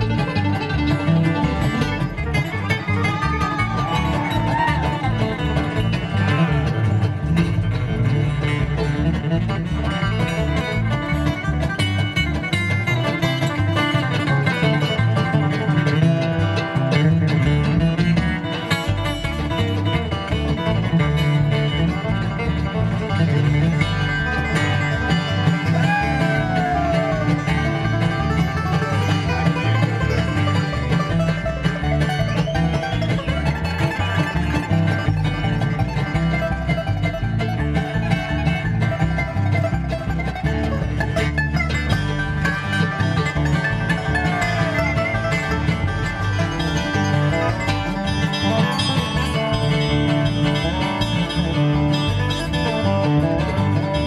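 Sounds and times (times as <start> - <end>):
bluegrass band playing: 0.0 - 54.0.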